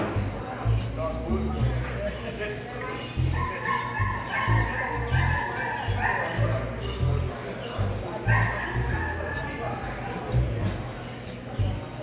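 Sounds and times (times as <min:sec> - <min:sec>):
background music with steady beat: 0:00.0 - 0:12.0
small dog barking: 0:03.4 - 0:06.7, 0:08.3 - 0:09.5.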